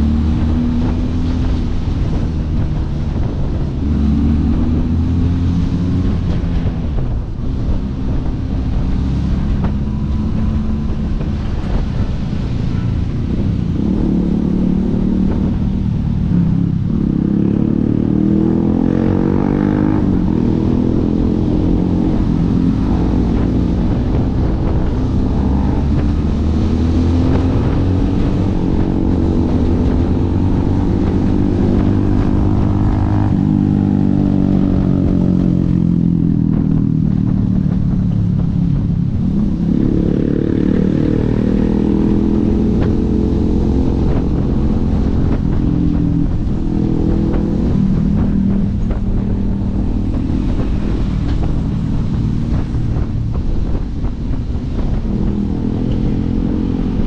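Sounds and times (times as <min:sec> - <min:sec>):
motorcycle engine under way: 0:13.7 - 0:57.0.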